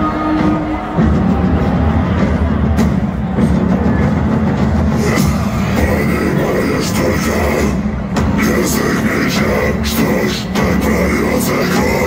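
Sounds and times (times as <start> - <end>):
metal band playing live: 0.0 - 12.0.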